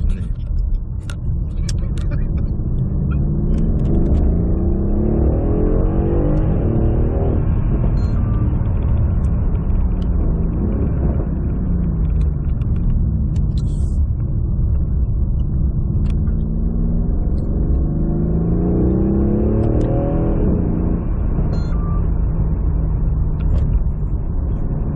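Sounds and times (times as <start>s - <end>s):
car engine accelerating: 0.0s - 24.9s.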